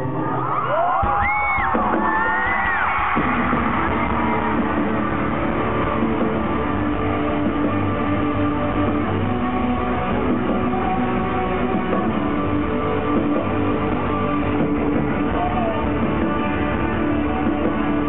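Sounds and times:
crowd screaming: 0.0 - 18.0
live rock band playing: 0.2 - 18.0.

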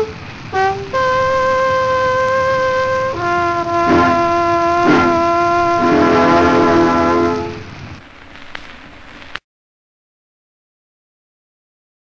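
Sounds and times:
brass military band: 0.0 - 7.7
solo trombone: 0.0 - 7.8
record hiss: 0.0 - 9.4.

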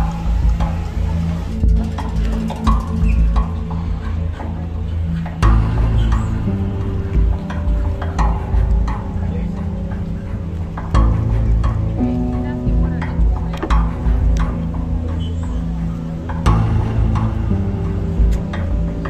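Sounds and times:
music with bass and drums: 0.0 - 19.0.

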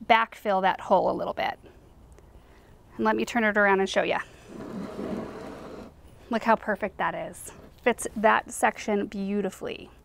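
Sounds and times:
ceramic pot scraping on wood: 4.2 - 6.0, 7.3 - 8.1.

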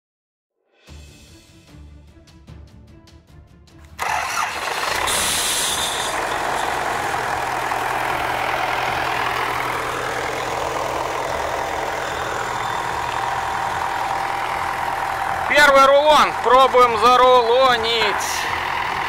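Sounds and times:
tractor engine running: 3.8 - 19.0
brief high hiss: 4.0 - 6.2.

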